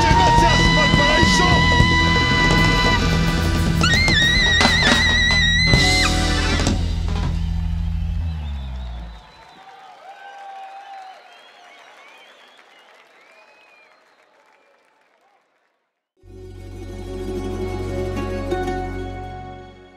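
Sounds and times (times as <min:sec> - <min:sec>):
live rock band: 0:00.0 - 0:07.5
faint crowd cheering and applause: 0:00.0 - 0:15.8.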